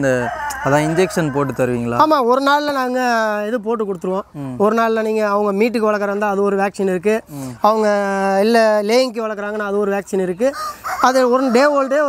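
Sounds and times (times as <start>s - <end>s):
rooster crowing: 0.0s - 2.0s, 10.5s - 12.0s.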